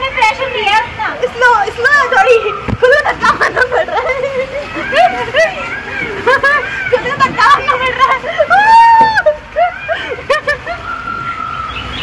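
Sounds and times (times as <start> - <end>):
women shrieking: 1.8 - 11.8.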